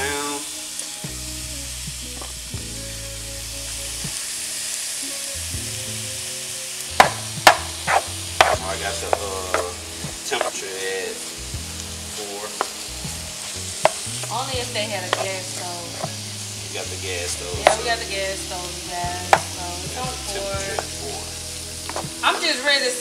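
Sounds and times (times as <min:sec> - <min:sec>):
chicken sizzling in oil: 0:00.0 - 0:23.0
spatula scraping and knocking pan: 0:07.0 - 0:10.6, 0:15.0 - 0:16.2, 0:19.3 - 0:19.6.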